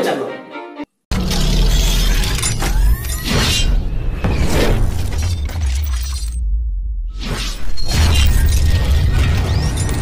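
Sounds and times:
deep bass rumble: 4.2 - 7.2.

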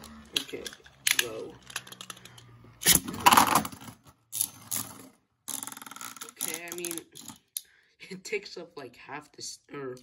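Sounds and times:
spinning top rattling and scraping: 0.0 - 7.5.

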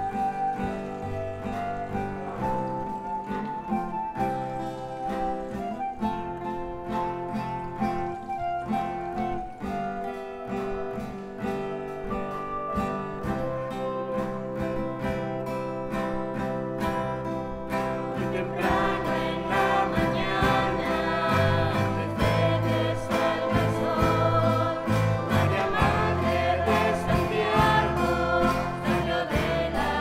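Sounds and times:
acoustic guitar strumming: 0.0 - 30.0
person singing: 18.2 - 30.0.

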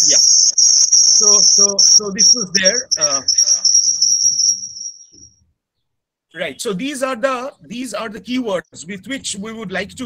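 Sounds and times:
high-pitched pulsing trill: 0.0 - 5.4.

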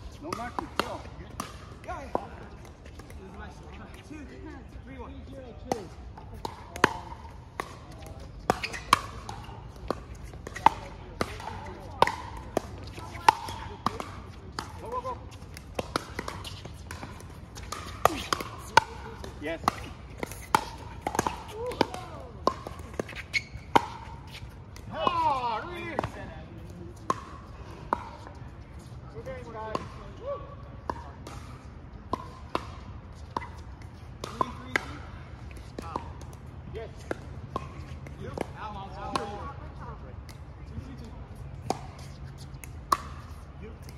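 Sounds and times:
paddles hitting plastic ball: 0.2 - 4.1, 5.7 - 28.4, 30.8 - 39.4.

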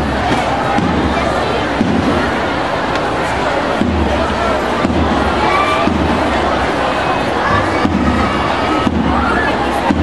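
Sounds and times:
marching band drumming: 0.0 - 10.0.

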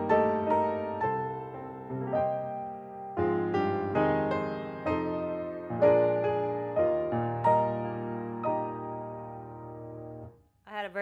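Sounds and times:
person speaking: 10.7 - 11.0.

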